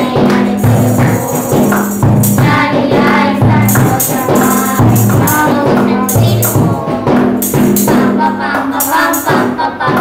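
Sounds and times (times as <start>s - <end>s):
backing music: 0.0s - 10.0s
children singing worship song: 0.0s - 10.0s
jingling percussion: 0.0s - 10.0s.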